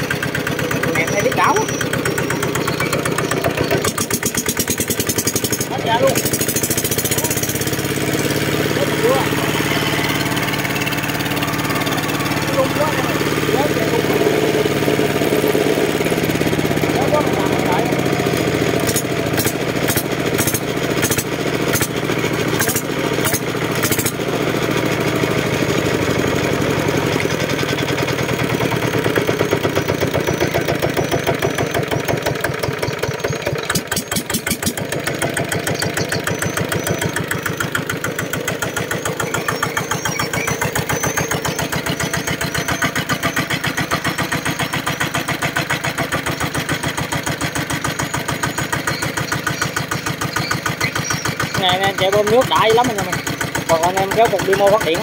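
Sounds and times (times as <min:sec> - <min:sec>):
diesel engine chugging: 0:00.0 - 0:55.0.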